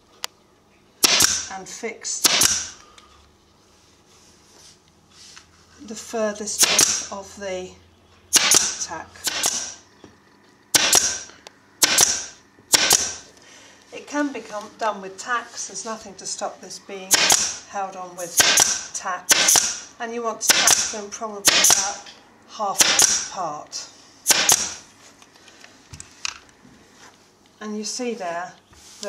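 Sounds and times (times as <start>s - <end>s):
pneumatic staple gun firing: 1.0s - 1.5s, 2.2s - 2.8s, 6.6s - 7.1s, 8.3s - 9.8s, 10.7s - 13.2s, 17.1s - 17.6s, 18.3s - 19.9s, 20.5s - 22.0s, 22.8s - 23.3s, 24.3s - 24.8s.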